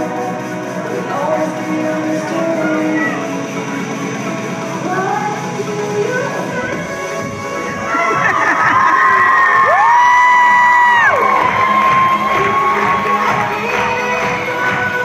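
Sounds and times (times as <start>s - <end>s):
dance music: 0.0s - 15.0s
children cheering and shouting: 7.5s - 15.0s.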